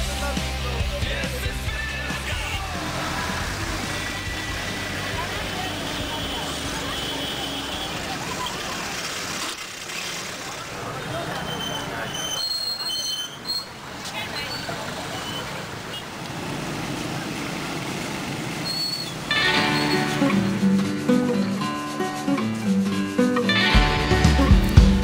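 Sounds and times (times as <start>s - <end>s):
loud music: 0.0s - 6.7s, 19.3s - 25.0s
crowd voices: 0.0s - 25.0s
traffic: 0.0s - 25.0s
vehicle horn beeps: 5.4s - 8.6s, 19.3s - 20.3s.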